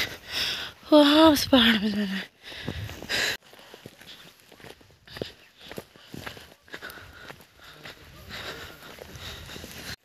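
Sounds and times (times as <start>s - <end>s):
footsteps on a path: 0.0s - 10.0s.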